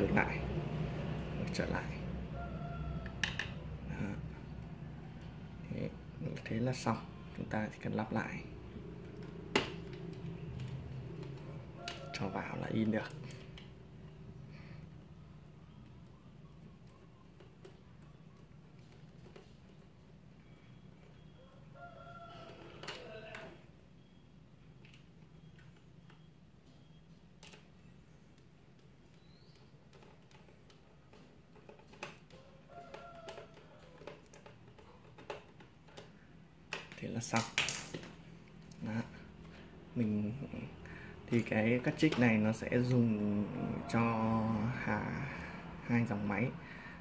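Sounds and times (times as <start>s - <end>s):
rooster crowing: 2.2s - 4.2s, 11.5s - 13.1s, 21.2s - 23.6s, 32.3s - 34.1s, 43.1s - 45.6s.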